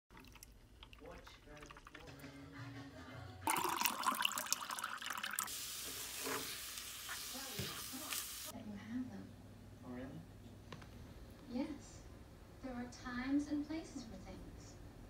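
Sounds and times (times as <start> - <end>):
water pouring into glass: 0.1 - 2.2, 3.5 - 5.5
eggs hissing in pan: 4.6 - 8.5.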